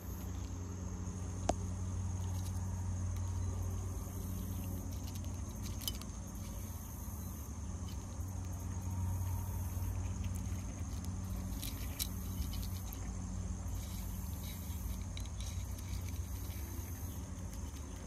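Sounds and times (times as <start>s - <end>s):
insects trilling: 0.0s - 18.0s
low background rumble: 0.0s - 18.0s.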